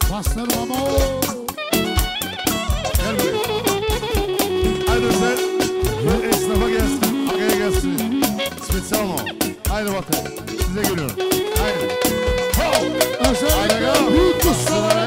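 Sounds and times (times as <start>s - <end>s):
live band dance music: 0.0s - 15.0s
steady drum beat: 0.0s - 15.0s
wavering lead melody: 0.6s - 15.0s.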